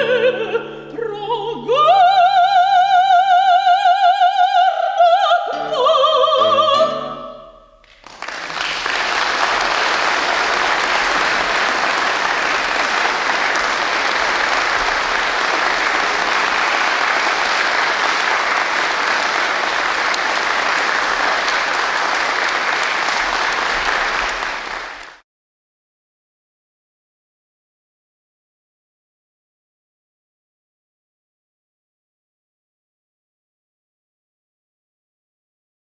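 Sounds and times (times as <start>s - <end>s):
audience applauding: 7.8s - 25.2s.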